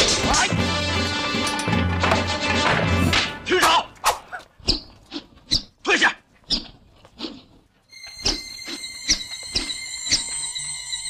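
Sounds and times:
film score music: 0.0 - 4.6.

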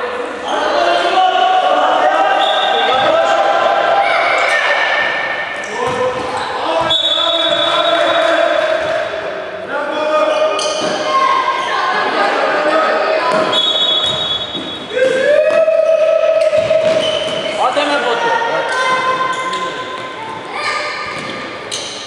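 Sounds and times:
basketball bouncing on court: 5.8 - 6.9, 16.4 - 17.6, 21.0 - 21.9.

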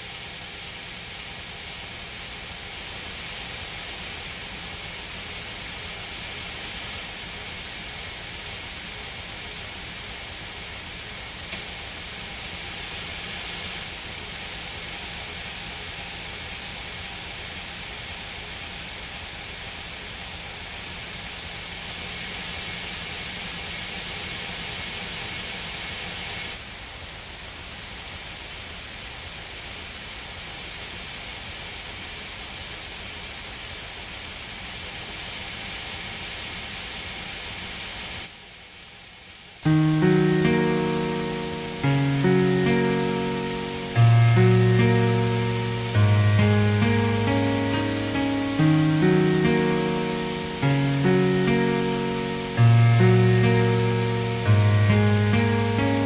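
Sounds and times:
droning noise with held tones: 37.8 - 56.0.

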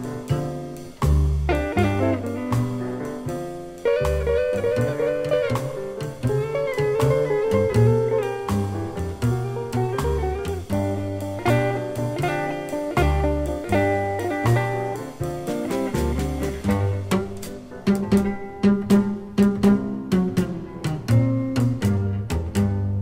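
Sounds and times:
double bass walking: 0.0 - 23.0
guitar: 0.0 - 23.0.

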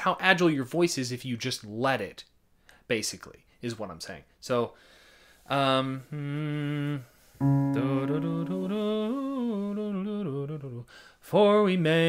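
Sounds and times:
man humming: 5.8 - 10.8.

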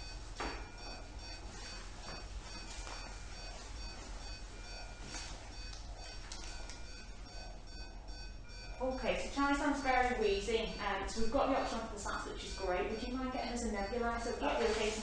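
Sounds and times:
rapid electronic beeps: 0.0 - 15.0.

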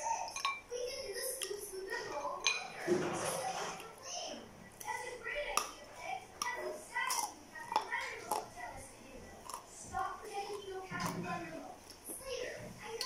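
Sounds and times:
voices talking: 0.0 - 13.0
crunchy food being chewed: 4.7 - 12.2.

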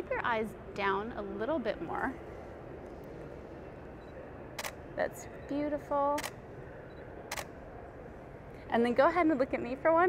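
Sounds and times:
woman speaking: 0.0 - 2.2, 5.0 - 6.3, 8.7 - 10.0.

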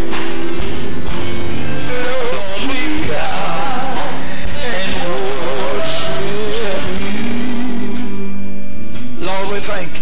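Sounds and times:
sustained music: 0.0 - 10.0
man singing worship song: 1.7 - 8.0.

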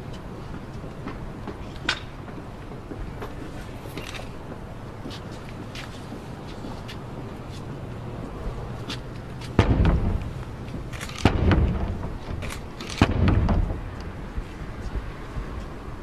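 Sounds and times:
heavy knocks on wooden door: 9.6 - 10.4, 11.3 - 12.4, 13.0 - 14.0.

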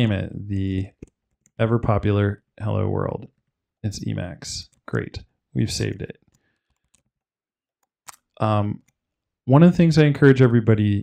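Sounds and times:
person speaking: 0.0 - 6.3, 8.1 - 11.0.

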